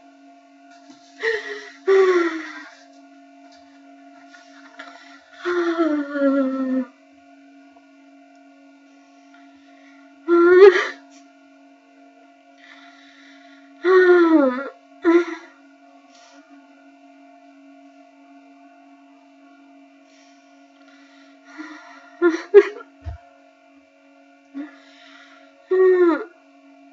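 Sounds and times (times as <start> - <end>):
steady hum: 0.0 - 26.9
woman crying: 1.2 - 2.9, 4.2 - 6.9, 10.3 - 11.0, 13.8 - 15.6, 21.5 - 22.9, 25.7 - 26.3.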